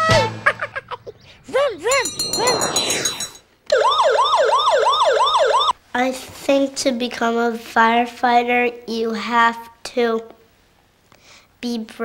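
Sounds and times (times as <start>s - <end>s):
siren wailing up and down: 2.4s - 5.8s.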